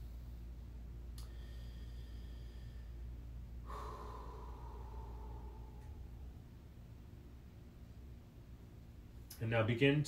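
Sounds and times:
man exhaling breathily: 0:01.2 - 0:06.4.

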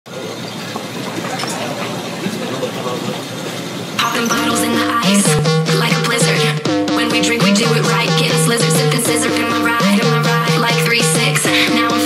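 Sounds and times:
steady background noise: 0:00.1 - 0:06.5
indistinct voices chattering: 0:00.1 - 0:12.0.

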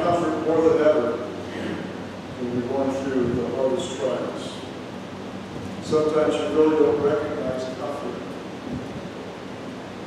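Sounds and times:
microphone room noise hiss: 0:00.0 - 0:10.0.

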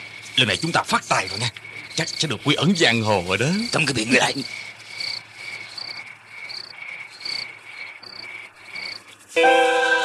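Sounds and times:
crickets chirping: 0:00.0 - 0:09.7
soft music with sustained chords: 0:09.4 - 0:10.0.

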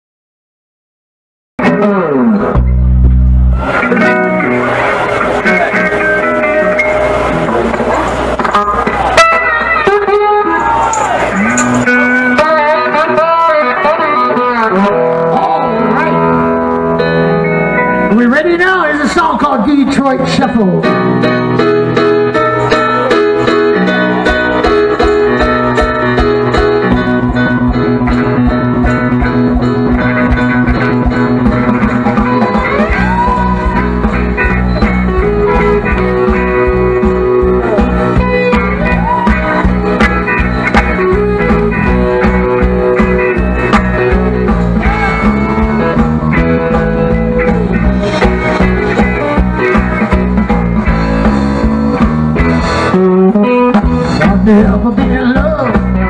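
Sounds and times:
blues band playing: 0:01.6 - 0:56.0
lead guitar bending notes: 0:01.6 - 0:56.0.

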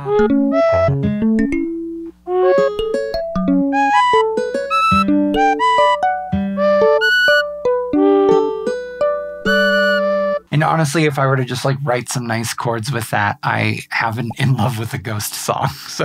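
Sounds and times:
sampled instrument chords: 0:00.0 - 0:11.0.

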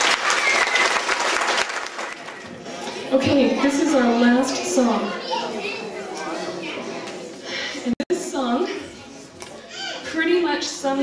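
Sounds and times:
children's voices echoing: 0:02.2 - 0:11.0.

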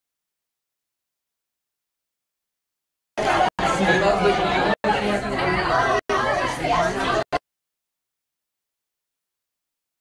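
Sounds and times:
voices chattering: 0:03.2 - 0:07.4.

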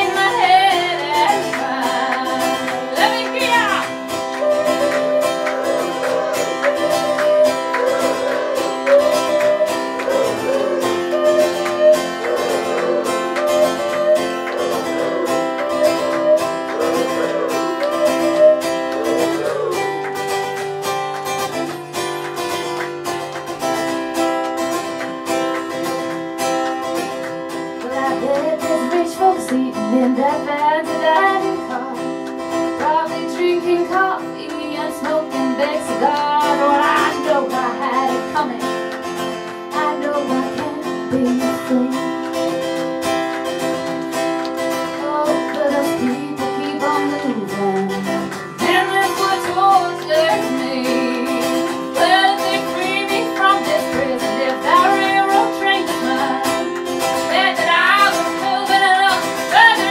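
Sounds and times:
woman singing: 0:00.0 - 0:14.8, 0:27.8 - 0:38.8, 0:39.6 - 0:42.6, 0:44.8 - 0:59.9
acoustic guitar strumming: 0:00.0 - 0:59.9.

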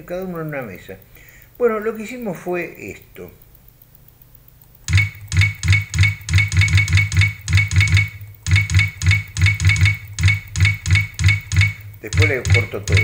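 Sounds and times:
rapid loud knocks with ring: 0:04.9 - 0:13.0.

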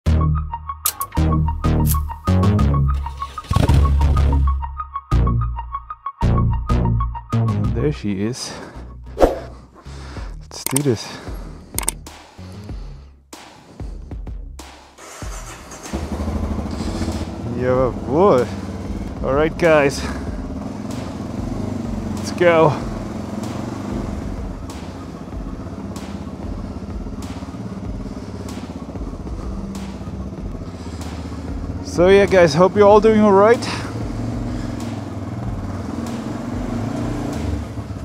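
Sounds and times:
motorcycle engine running at low revs: 0:15.2 - 0:38.0.

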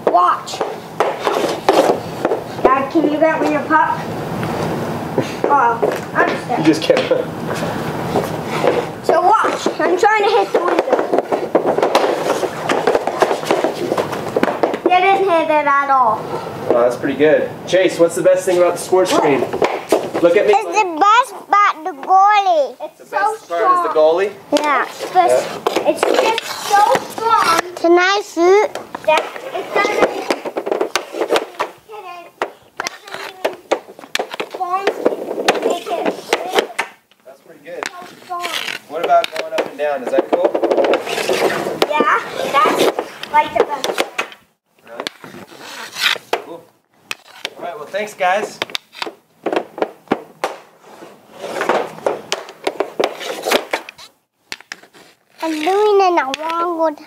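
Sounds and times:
young children's voices: 0:00.0 - 0:00.7, 0:09.0 - 0:11.4, 0:14.9 - 0:16.5, 0:20.5 - 0:30.6, 0:31.4 - 0:33.8, 0:34.5 - 0:36.8, 0:37.9 - 0:38.8, 0:41.8 - 0:44.0, 0:55.4 - 0:57.0
hockey sticks clacking on floor: 0:00.0 - 0:03.7, 0:05.2 - 0:15.5, 0:19.0 - 0:22.6, 0:23.5 - 0:57.0.

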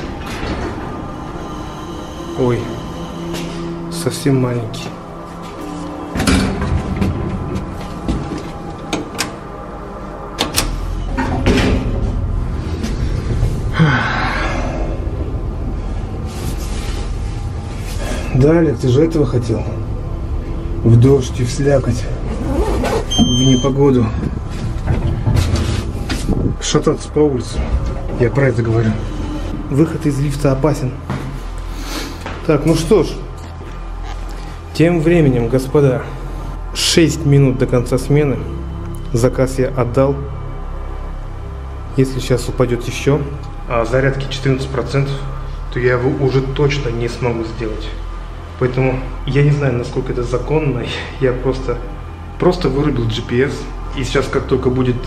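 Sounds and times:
lift doors sliding open: 0:00.0 - 0:03.8
low mechanical rumble: 0:00.0 - 0:55.0.

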